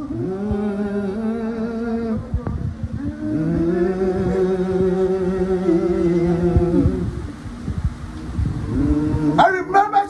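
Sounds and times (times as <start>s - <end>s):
congregation humming: 0.0s - 10.0s.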